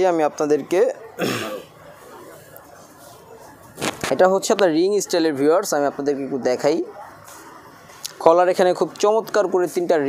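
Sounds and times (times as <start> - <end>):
man clearing his throat: 1.2 - 1.7.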